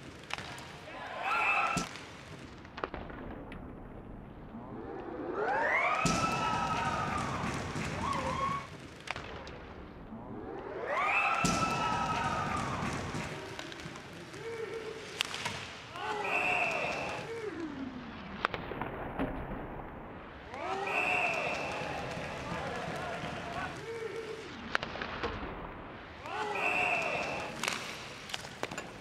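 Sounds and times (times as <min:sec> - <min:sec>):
rising and falling siren: 0:05.0 - 0:06.1, 0:10.1 - 0:12.5.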